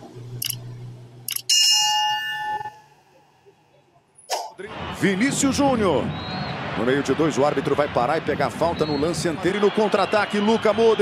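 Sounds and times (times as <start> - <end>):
bright bell ding: 1.5 - 3.0.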